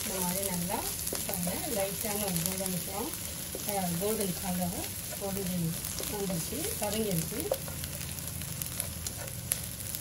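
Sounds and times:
spatula scraping wok: 0.0 - 10.0
spatula tapping wok: 0.0 - 10.0
vegetables sizzling in oil: 0.0 - 10.0.

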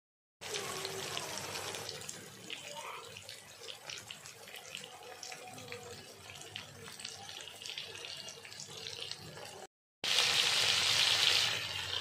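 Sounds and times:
food sizzling in oil: 0.4 - 12.0.

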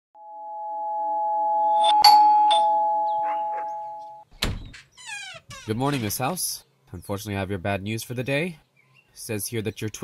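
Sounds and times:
two-note doorbell chime: 1.6 - 4.2.

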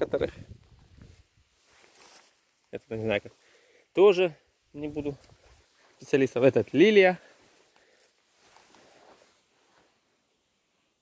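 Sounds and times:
faint soft noise: 0.0 - 11.0.

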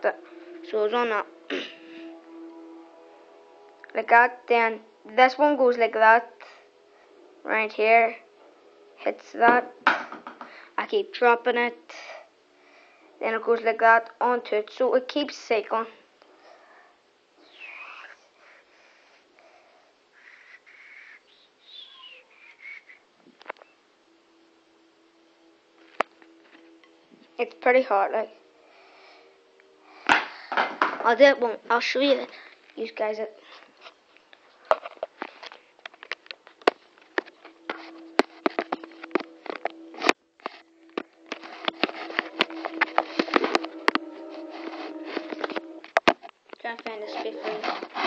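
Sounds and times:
steady low hum: 35.2 - 48.0
high whistle-like notes: 41.3 - 46.0.

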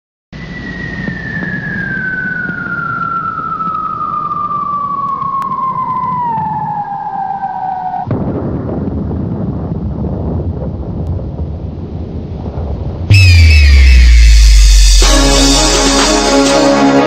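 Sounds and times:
falling bomb whistle: 0.4 - 8.1, 13.1 - 17.0
explosion: 8.0 - 11.5, 12.4 - 15.7
low rumble: 8.1 - 16.6.

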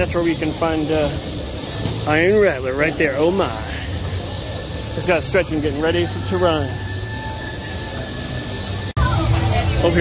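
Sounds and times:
faint high steady tone: 0.0 - 10.0
fog machines hissing: 0.0 - 10.0.

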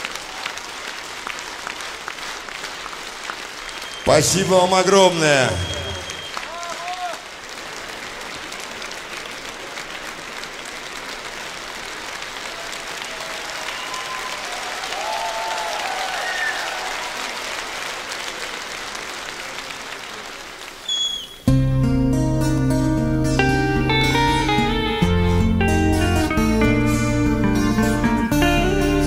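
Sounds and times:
audience applauding: 0.0 - 21.5
voices calling out: 3.8 - 7.2
band playing led by guitar: 21.5 - 29.0.

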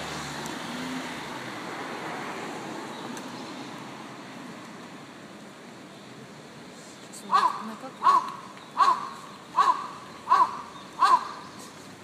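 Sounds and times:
crow cawing: 7.3 - 11.5.

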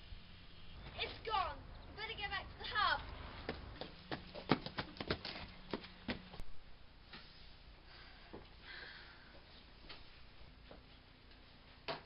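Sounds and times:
running footsteps on gravel: 3.4 - 6.4.

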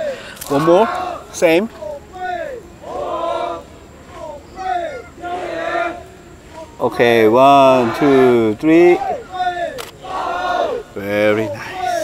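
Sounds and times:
sharp click: 9.8 - 10.0.

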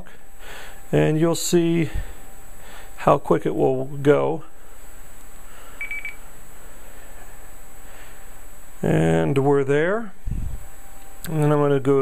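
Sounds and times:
background hiss: 0.0 - 12.0
phone beep: 5.8 - 6.2.

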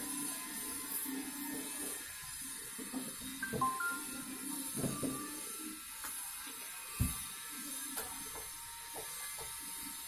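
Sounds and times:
background music: 3.4 - 5.2.

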